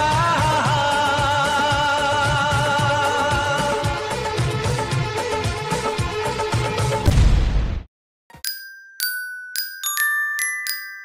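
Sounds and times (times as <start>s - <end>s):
bright chime ringing: 8.3s - 11.0s.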